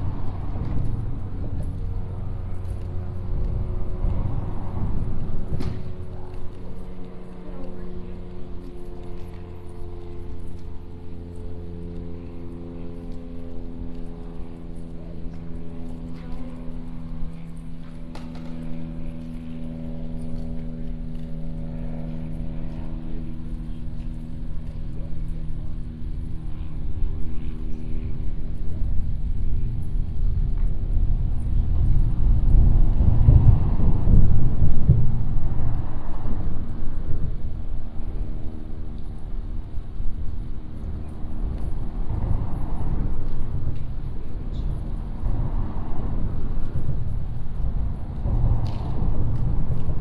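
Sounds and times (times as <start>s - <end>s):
engine droning: 0.0s - 50.0s
low traffic rumble: 0.0s - 50.0s.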